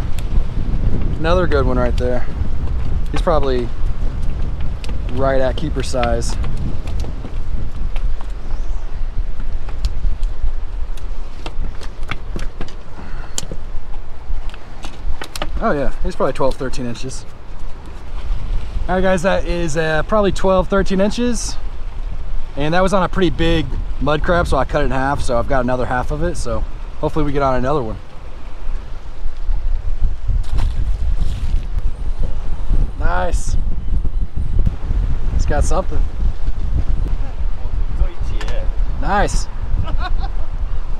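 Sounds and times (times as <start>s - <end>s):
wind buffeting microphone: 0.0s - 40.9s.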